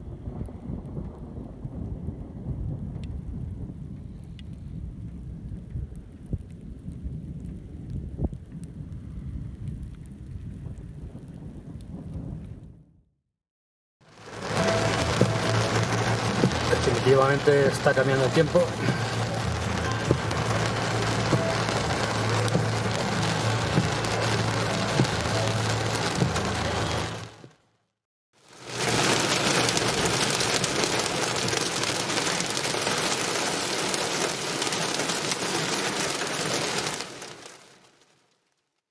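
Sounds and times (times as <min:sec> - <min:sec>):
heavy rain drumming on car roof: 0:14.0 - 0:27.6, 0:28.4 - 0:38.4
low engine hum: 0:18.4 - 0:27.4.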